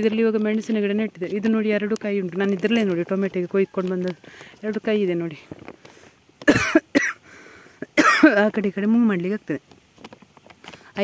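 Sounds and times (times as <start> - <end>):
person coughing: 6.4 - 7.2, 7.8 - 8.4.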